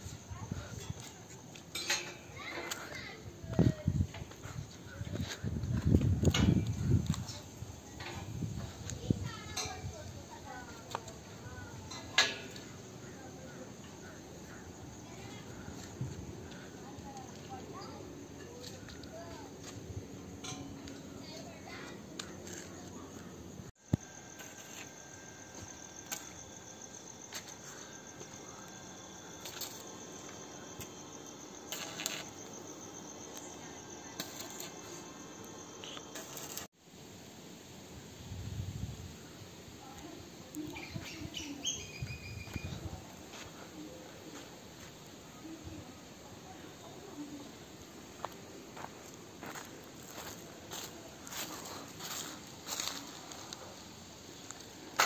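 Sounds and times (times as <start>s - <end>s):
crickets chirping: 0.0s - 55.0s
clicks and crackles: 31.7s - 32.6s, 34.2s - 36.7s
footsteps on gravel: 48.2s - 53.6s.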